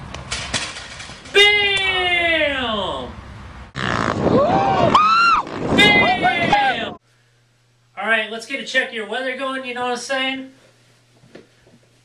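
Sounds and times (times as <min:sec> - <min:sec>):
person yelling: 0:01.3 - 0:03.1, 0:04.4 - 0:07.0.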